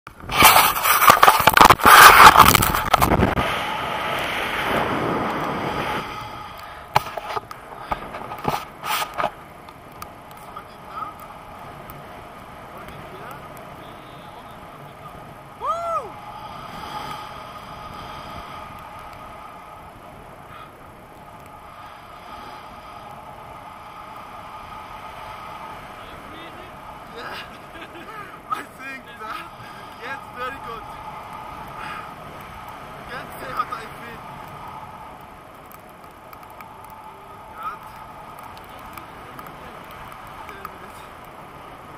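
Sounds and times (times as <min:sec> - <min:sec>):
wind rushing over microphone: 0:00.1 - 0:41.9.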